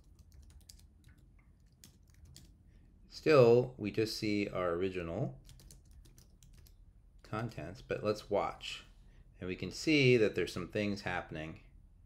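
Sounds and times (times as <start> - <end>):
typing on computer keyboard: 0.0 - 2.6, 5.4 - 6.8.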